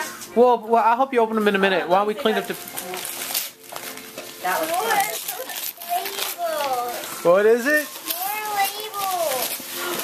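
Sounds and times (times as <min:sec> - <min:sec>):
wrapping paper rustling: 0:02.2 - 0:10.0
children talking: 0:04.4 - 0:10.0.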